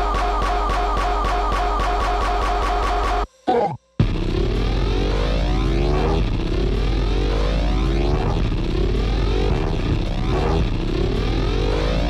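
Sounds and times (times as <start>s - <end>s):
electronic dance music: 0.0s - 12.0s
rising synth sweep: 4.0s - 12.0s.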